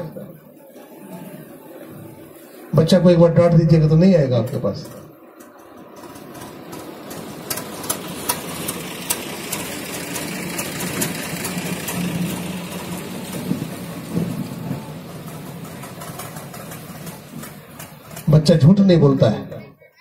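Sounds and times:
engine droning: 0.0s - 19.6s.

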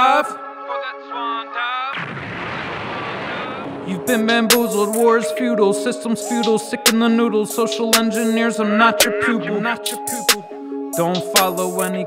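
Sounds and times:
loud rush of noise: 2.0s - 3.9s.

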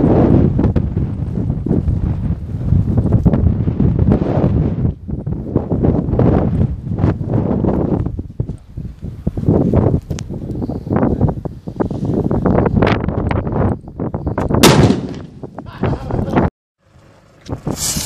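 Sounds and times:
wind buffeting microphone: 0.0s - 16.5s, 17.4s - 18.0s
firecracker bang with echo: 14.6s - 15.4s.

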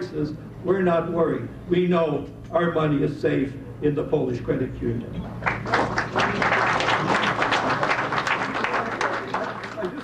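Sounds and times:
large audience applauding: 5.4s - 10.0s.

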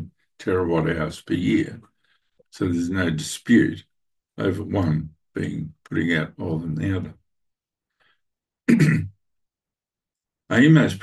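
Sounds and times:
man clearing his throat: 8.7s - 9.2s.

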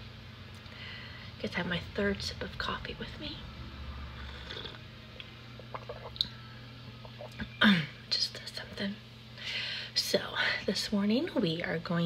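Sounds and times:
steady low hum: 0.0s - 12.0s
sipping hot coffee: 4.2s - 4.9s, 5.5s - 7.5s.

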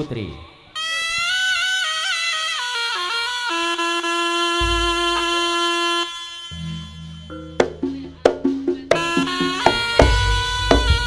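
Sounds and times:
double-reed shawm melody: 0.8s - 11.0s
deep low drum boom: 4.6s - 5.6s.

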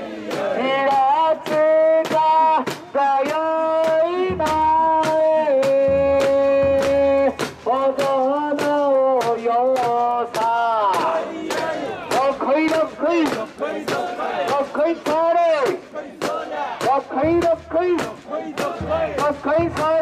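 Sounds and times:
group chanting in unison: 0.0s - 20.0s
sharp clacks: 0.9s - 20.0s.

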